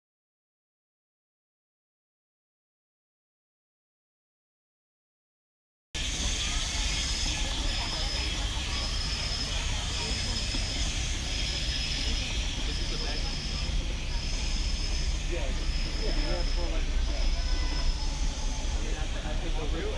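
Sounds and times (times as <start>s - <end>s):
faint voices: 6.0s - 19.9s
low rumble: 6.0s - 19.9s.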